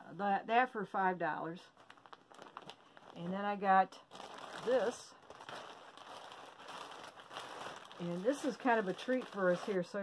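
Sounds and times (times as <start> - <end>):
plastic bag crinkling: 1.7 - 10.0.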